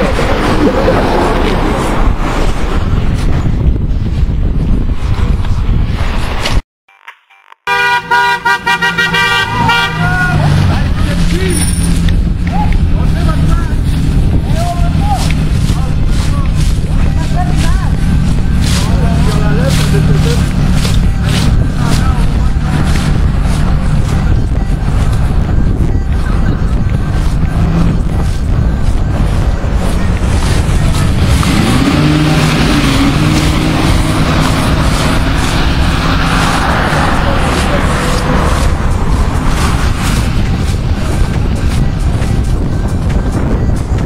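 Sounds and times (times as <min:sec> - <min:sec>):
loud rough noise: 0:00.0 - 0:06.4, 0:08.8 - 0:44.0
car horn tooting: 0:07.0 - 0:10.5
car engine hum: 0:07.9 - 0:44.0.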